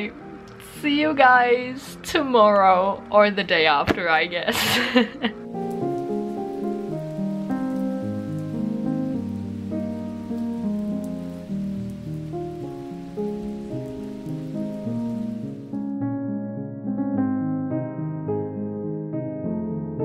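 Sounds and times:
rain falling: 0:00.0 - 0:15.9
slow keyboard music: 0:00.0 - 0:20.0.

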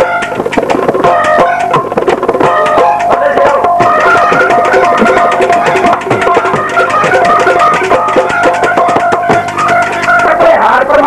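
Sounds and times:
percussion beat: 0:00.0 - 0:11.0
plucked string instrument: 0:00.0 - 0:11.0.

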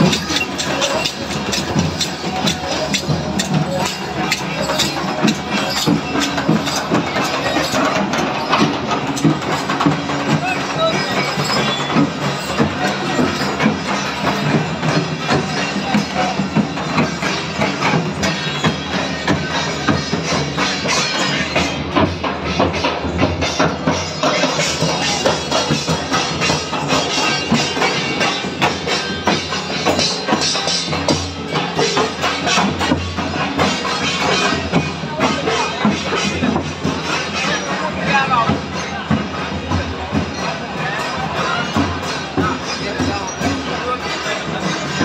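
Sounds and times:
clattering percussion: 0:00.0 - 0:45.0
crowd voices: 0:00.0 - 0:45.0
hand drums beating rapidly: 0:00.0 - 0:45.0.

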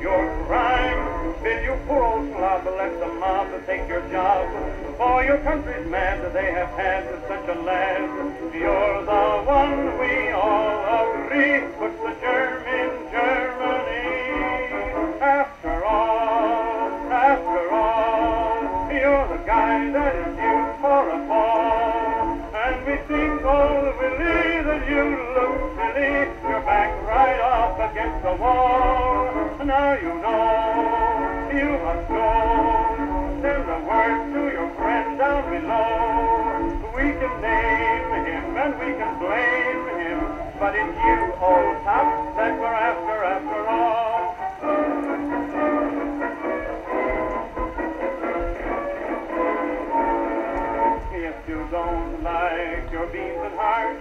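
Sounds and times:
song on acoustic phonograph: 0:00.0 - 0:54.0.

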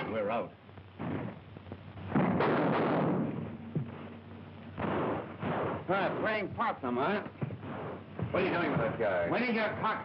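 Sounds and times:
sharp crack: 0:00.9 - 0:03.6, 0:04.8 - 0:08.8
gunshots: 0:02.0 - 0:03.7, 0:04.8 - 0:09.1.

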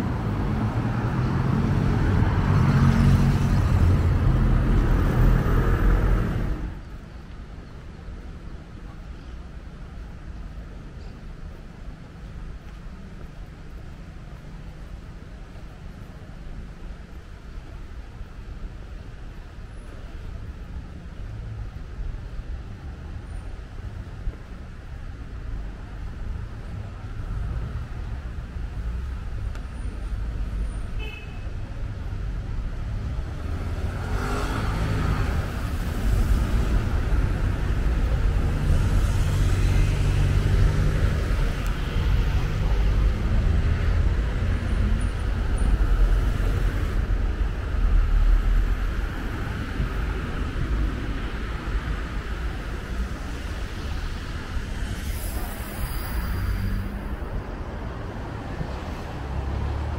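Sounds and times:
cars passing: 0:00.0 - 0:07.0, 0:25.4 - 0:59.9
low traffic rumble: 0:00.0 - 0:59.9.

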